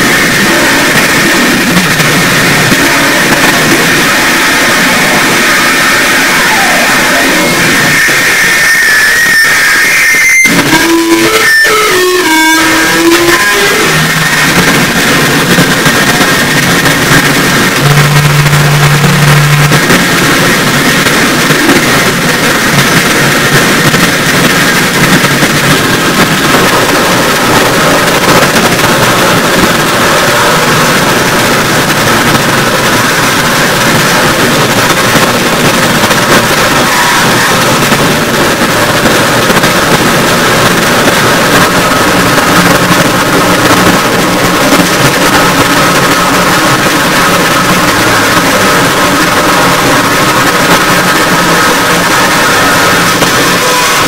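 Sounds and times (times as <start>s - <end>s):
wall of distorted noise: 0.0s - 54.0s
low held tone: 17.7s - 20.2s.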